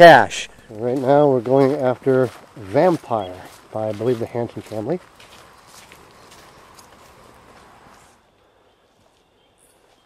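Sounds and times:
footsteps on woodland trail: 0.1s - 10.0s.

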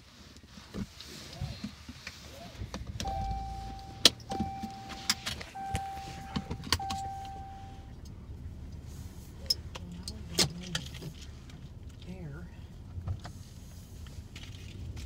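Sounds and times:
engine idling rumble: 2.6s - 15.0s
car warning chime beeps: 3.0s - 8.0s.

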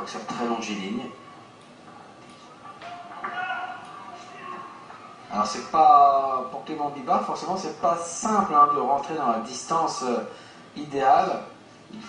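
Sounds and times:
voices echoing in a hall: 0.0s - 6.4s.

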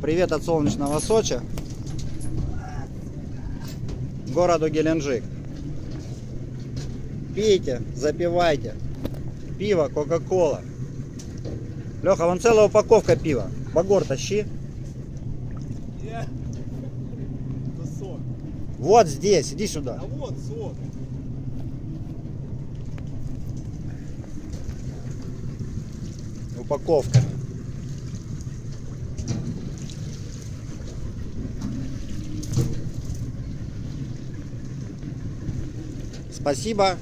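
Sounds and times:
boat engine humming: 0.0s - 37.0s.

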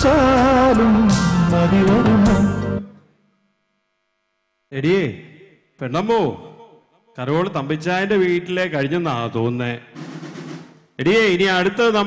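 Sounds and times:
man speaking: 4.7s - 6.6s, 7.2s - 9.8s, 11.0s - 12.0s.

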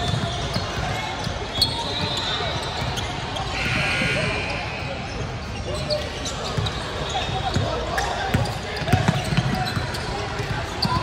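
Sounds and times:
indistinct voices: 3.4s - 6.0s.

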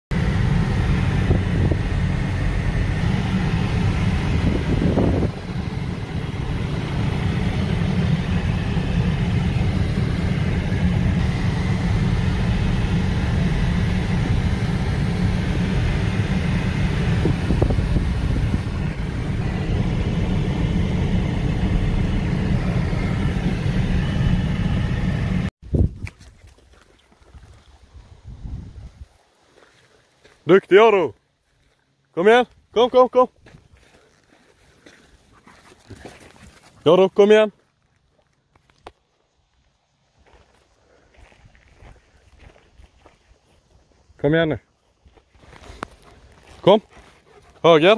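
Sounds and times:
car cabin road and engine noise: 0.1s - 25.5s, 45.2s - 47.9s.

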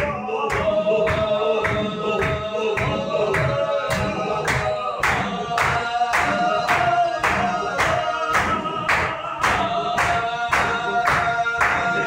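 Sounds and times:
hand claps: 0.0s - 12.0s
men chanting in unison: 0.0s - 12.0s.

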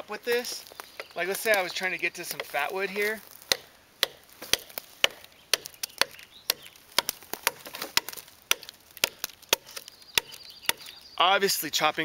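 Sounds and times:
knife chopping into log: 3.5s - 10.9s.

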